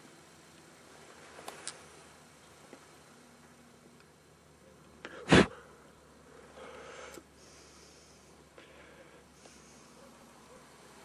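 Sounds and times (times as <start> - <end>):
faint background hiss: 0.0 - 11.0
loud sneeze: 5.2 - 5.6.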